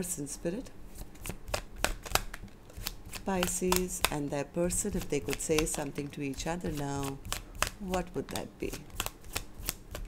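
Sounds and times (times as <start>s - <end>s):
cards being shuffled: 0.9s - 10.0s.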